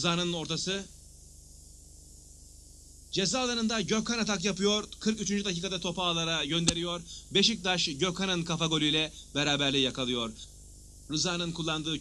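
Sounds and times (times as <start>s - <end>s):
electrical hum with hiss: 0.0s - 12.0s.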